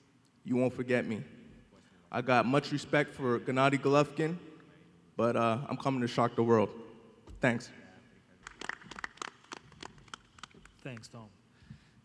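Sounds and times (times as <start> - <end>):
quick irregular sharp clicks: 8.4 - 11.2.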